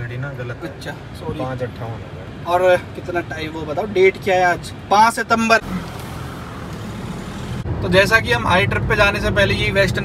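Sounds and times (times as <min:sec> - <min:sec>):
road noise from moving car: 0:00.0 - 0:10.0.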